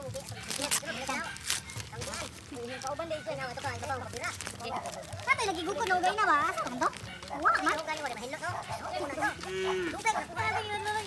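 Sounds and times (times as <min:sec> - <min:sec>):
people calling out and talking: 0:00.0 - 0:11.0.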